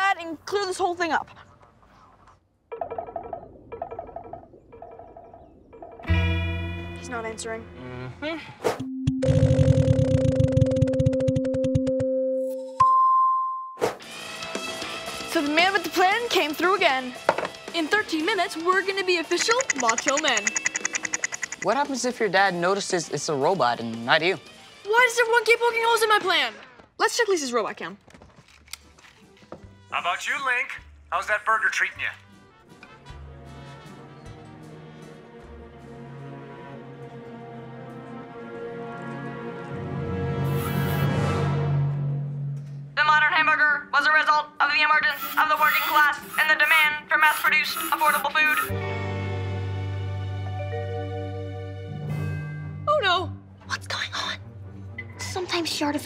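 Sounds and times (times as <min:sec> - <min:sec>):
soft background music: 0:14.1 - 0:56.0
mobile phone ringtone: 0:19.6 - 0:21.6.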